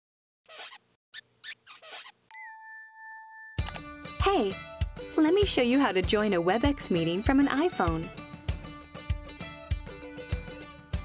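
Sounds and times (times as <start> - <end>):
bright chime: 2.3 - 3.7
background music with beat: 7.8 - 11.0.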